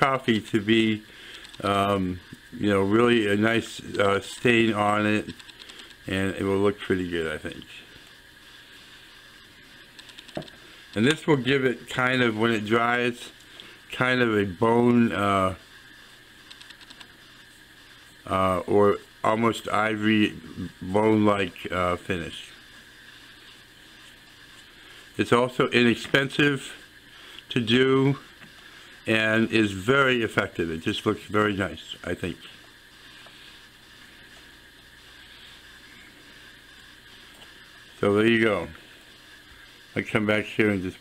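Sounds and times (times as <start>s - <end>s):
room hiss: 0.0s - 41.0s
cloth wiping rustle: 20.3s - 40.8s.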